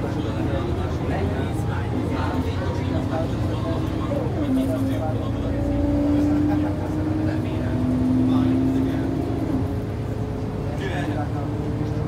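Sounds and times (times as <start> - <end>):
bus engine drone: 0.0 - 12.0.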